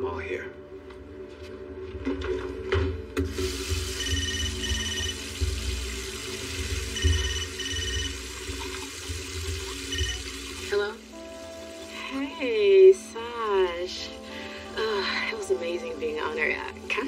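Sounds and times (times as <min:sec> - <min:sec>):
short high electronic beeps: 0:04.0 - 0:05.2, 0:07.0 - 0:08.2, 0:09.9 - 0:10.2.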